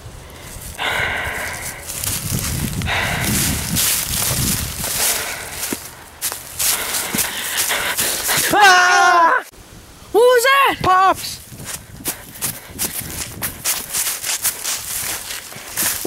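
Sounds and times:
footsteps crunching through dry leaves: 0.4s - 8.5s, 11.4s - 16.0s.

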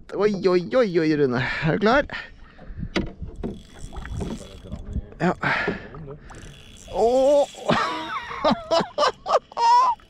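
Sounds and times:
fishing reel clicking and ratcheting: 3.4s - 5.0s, 6.2s - 10.0s.

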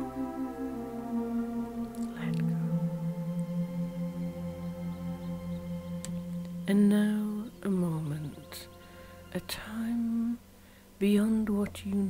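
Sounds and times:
quiet background music: 0.0s - 12.0s
woman whispering: 2.1s - 2.5s
woman singing held tones: 5.9s - 12.0s.

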